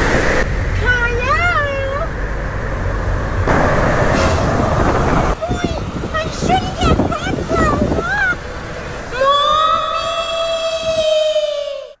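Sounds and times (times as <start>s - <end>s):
man wailing high-pitched: 9.2s - 12.0s.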